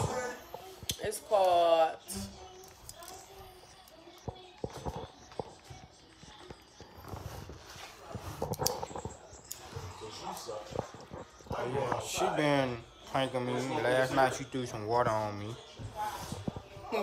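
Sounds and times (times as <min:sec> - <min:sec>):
low indistinct voices: 0:00.0 - 0:17.0.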